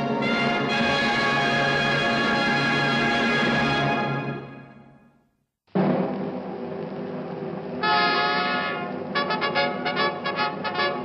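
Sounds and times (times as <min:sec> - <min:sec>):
bright brass chord: 0:00.0 - 0:04.8
orchestral chord: 0:00.0 - 0:04.9.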